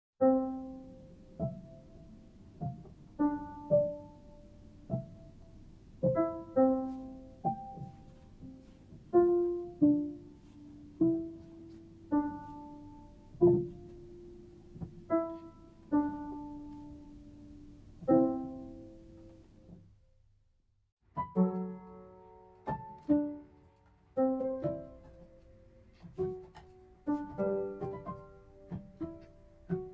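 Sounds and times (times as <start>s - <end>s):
slow piano notes: 0.2s - 20.0s, 21.1s - 29.9s
soft low thump: 7.0s - 9.2s.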